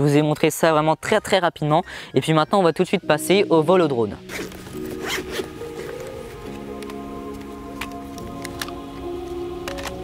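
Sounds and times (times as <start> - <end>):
background music: 1.5 - 10.0
zip of case pulled open: 4.3 - 7.0.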